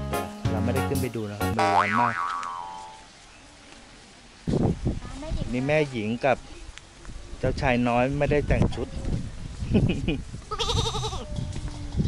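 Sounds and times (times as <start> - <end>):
background music: 0.0 - 1.8
faint outdoor ambience: 0.0 - 12.0.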